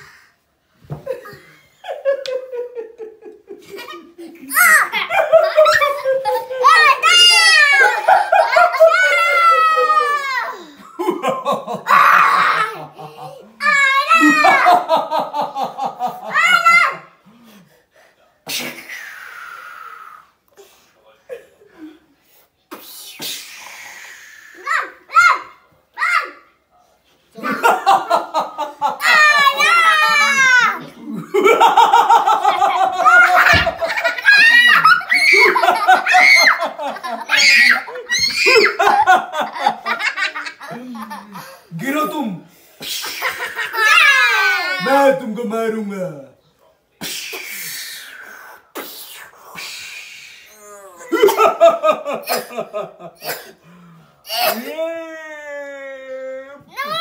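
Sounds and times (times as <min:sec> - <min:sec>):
child's shrill cry: 0:08.6 - 0:10.7, 0:13.6 - 0:14.8, 0:24.6 - 0:26.4, 0:29.0 - 0:30.8, 0:33.2 - 0:38.8
child hissing vocal noise: 0:18.6 - 0:20.4, 0:22.7 - 0:25.0, 0:47.0 - 0:50.8.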